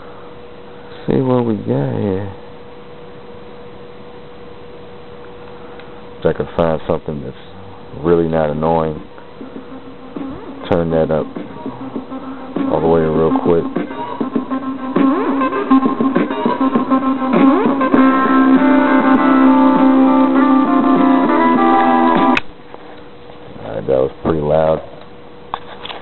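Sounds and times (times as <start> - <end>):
guitar music through small speaker: 9.4 - 22.4.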